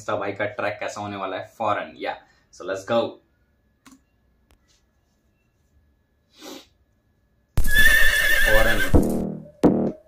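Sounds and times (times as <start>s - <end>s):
horse whinny: 7.6s - 9.0s.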